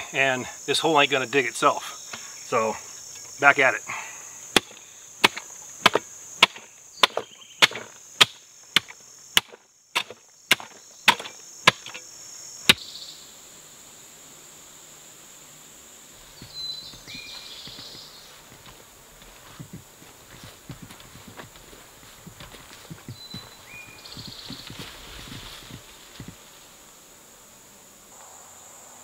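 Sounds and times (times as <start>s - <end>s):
insects buzzing: 0.0s - 29.0s
mattock chopping into dirt: 4.5s - 12.0s.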